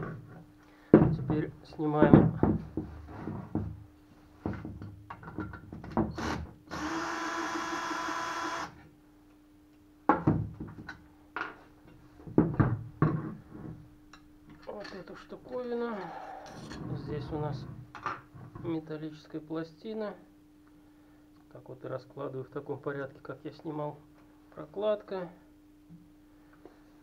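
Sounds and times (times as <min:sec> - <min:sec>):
cordless drill spinning: 0:06.2 - 0:08.8.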